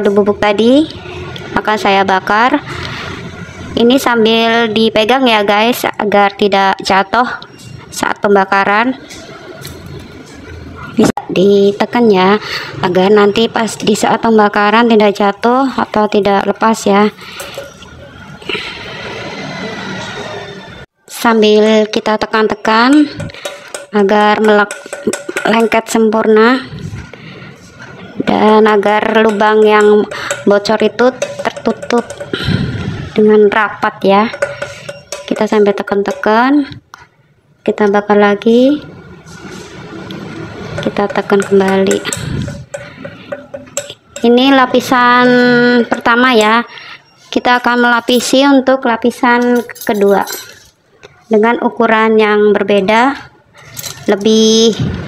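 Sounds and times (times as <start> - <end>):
metal spoon tapping steel pot: 17.4 - 17.9, 22.8 - 26.1, 28.7 - 32.6, 34.2 - 36.6, 40.7 - 45.0.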